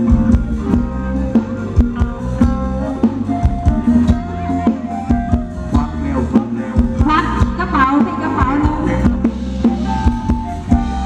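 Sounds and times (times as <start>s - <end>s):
live band playing dance music: 0.0s - 11.0s
steady drum beat: 0.0s - 11.0s.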